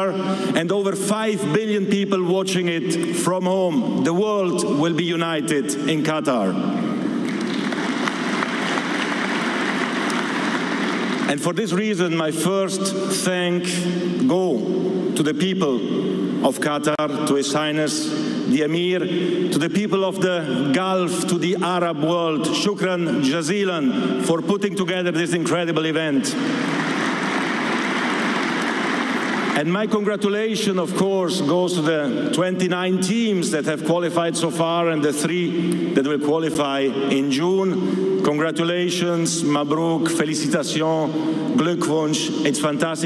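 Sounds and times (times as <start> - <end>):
audience applauding: 7.2 - 11.3, 26.5 - 29.6.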